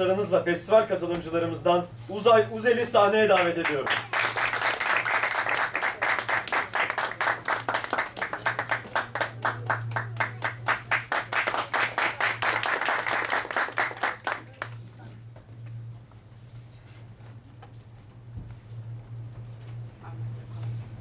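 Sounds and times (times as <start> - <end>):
steady low hum: 0.0 - 21.0
audience applauding: 3.4 - 14.9.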